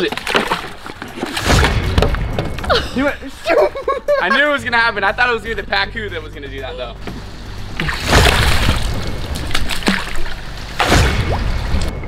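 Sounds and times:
fish thrashing in a plastic cooler: 0.0 - 1.7
water sloshing: 0.0 - 2.7, 7.1 - 11.9.

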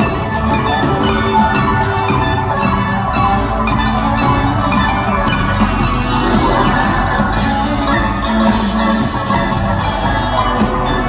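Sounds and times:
drums: 0.0 - 11.0
harp: 0.0 - 11.0
upright bass: 0.0 - 11.0.

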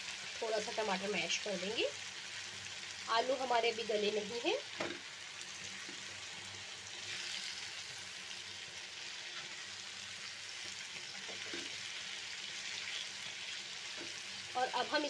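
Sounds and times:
food sizzling in frying pan: 0.0 - 15.0
spatula stirring in pan: 9.0 - 14.4.

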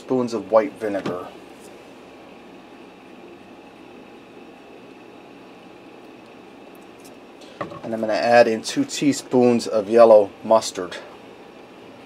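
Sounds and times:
room hiss and hum: 0.0 - 12.0.

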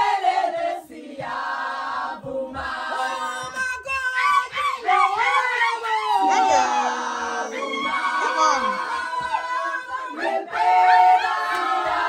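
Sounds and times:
women singing and chanting: 0.0 - 12.0
high gliding cries: 6.2 - 9.0.

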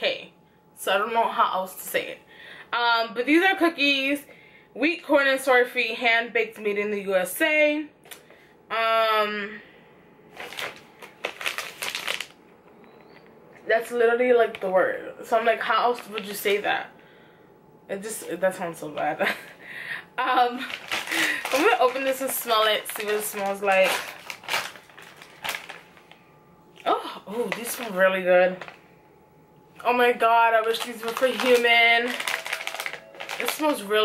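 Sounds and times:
plastic pouch crinkling: 10.3 - 12.4, 16.0 - 16.6, 20.5 - 26.2, 27.3 - 28.8, 30.5 - 34.0.

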